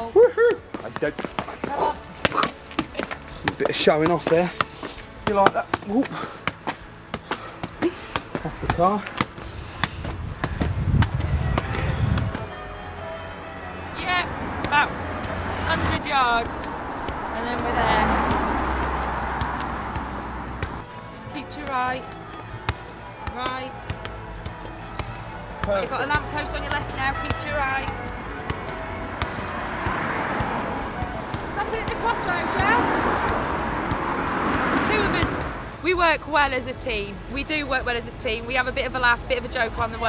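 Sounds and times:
football taps from feet and knees: 0.5s - 12.5s
car passing: 0.6s - 40.0s.

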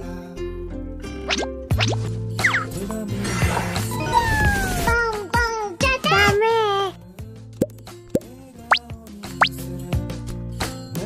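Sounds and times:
soft background music: 0.0s - 11.0s
cartoon bloop sound effects: 1.3s - 2.6s.

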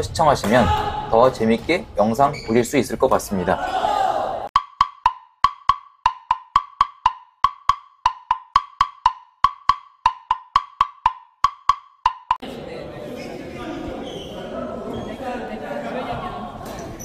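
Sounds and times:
pitched wooden clicks: 4.6s - 12.4s.

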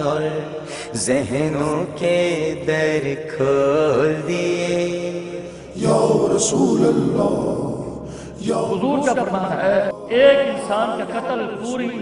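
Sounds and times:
man singing a hymn: 0.0s - 7.7s.

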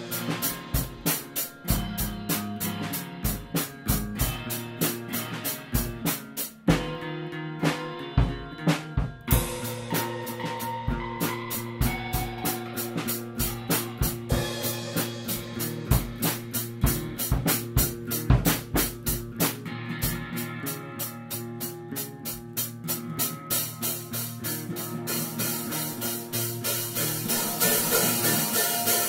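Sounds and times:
drum kit beat: 0.0s - 29.0s
electric guitar notes: 6.8s - 18.0s, 23.4s - 29.0s
bass guitar notes: 7.7s - 20.4s, 24.7s - 29.0s.

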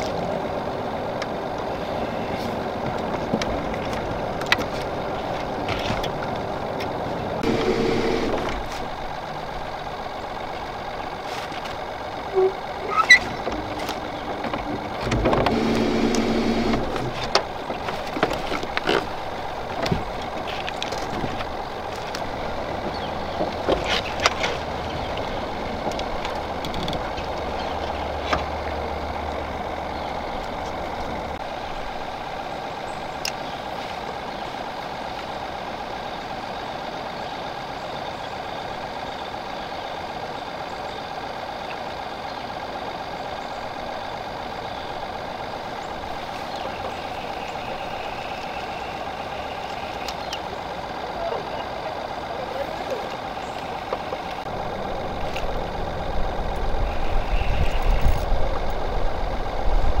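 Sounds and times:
electric motor whine: 7.4s - 8.8s, 15.0s - 17.2s
low rumble: 53.2s - 60.0s.

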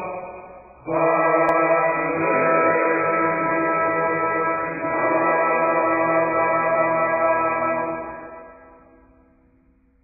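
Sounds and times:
music of long held notes: 0.0s - 9.0s
background music: 0.0s - 10.0s.

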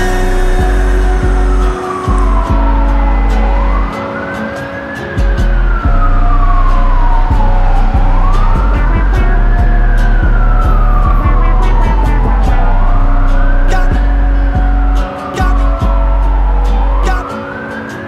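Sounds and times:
emergency siren wailing: 0.0s - 18.0s
music with deep bass: 0.0s - 18.0s.

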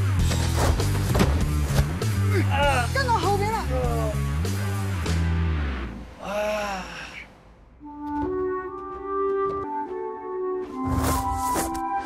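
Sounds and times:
person gasping: 6.2s - 7.4s
sustained music tones: 7.8s - 12.0s.

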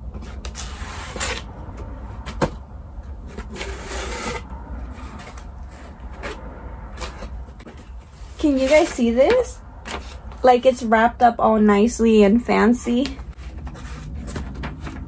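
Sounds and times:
cardboard rubbing and scraping: 0.1s - 10.3s, 12.9s - 15.0s.

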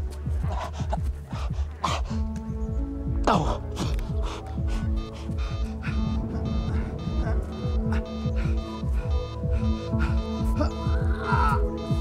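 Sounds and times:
tense dramatic score: 0.0s - 12.0s
man gasping and groaning: 3.1s - 12.0s.

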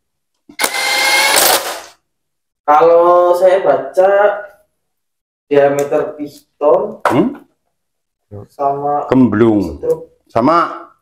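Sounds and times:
cordless drill motor whine: 0.6s - 1.9s.

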